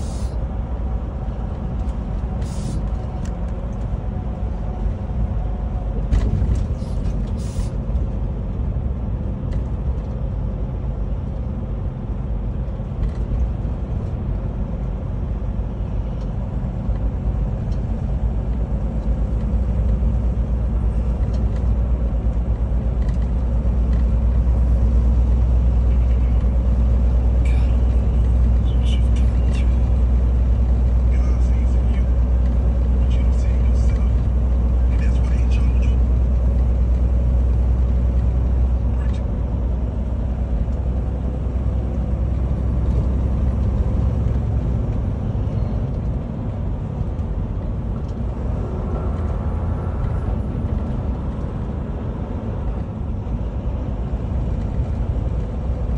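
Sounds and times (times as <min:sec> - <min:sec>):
road noise: 0:00.0 - 0:55.9
truck engine drone: 0:00.0 - 0:55.9.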